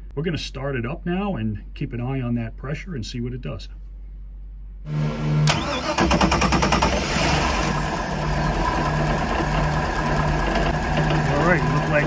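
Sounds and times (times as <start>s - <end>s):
boat engine idling: 7.5s - 12.0s.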